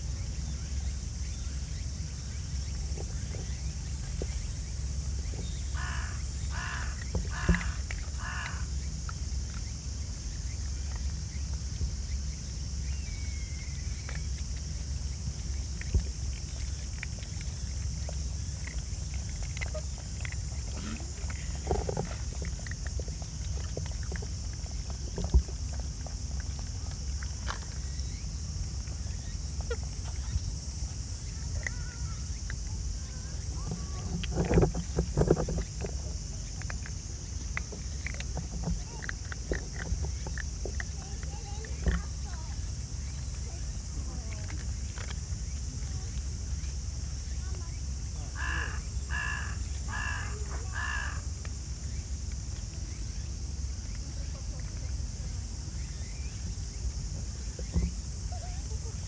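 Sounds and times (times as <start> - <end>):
paws and claws on asphalt: 0.6 - 59.0
crow cawing: 5.8 - 8.7, 48.4 - 51.2.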